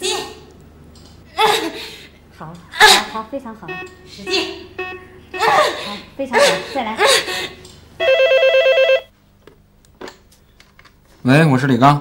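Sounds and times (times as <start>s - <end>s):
desk telephone ringing: 8.0s - 9.1s.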